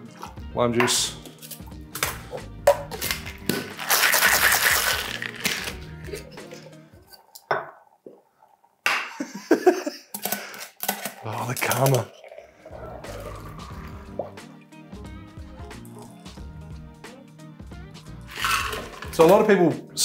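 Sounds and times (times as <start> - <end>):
background music: 0.0 - 8.0, 9.2 - 20.0
metal cocktail tins clinking: 0.2 - 7.8, 9.8 - 12.4, 18.3 - 19.5.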